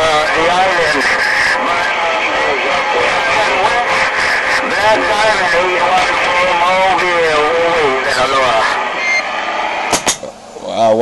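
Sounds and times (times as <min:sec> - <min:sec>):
voice over radio speaker: 0:00.0 - 0:09.0
radio static hiss: 0:00.0 - 0:11.0.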